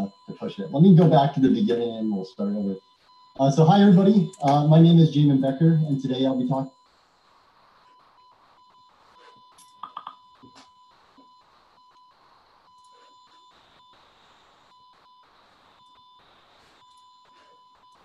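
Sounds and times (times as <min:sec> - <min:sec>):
thin electronic tone: 0:00.0 - 0:06.9.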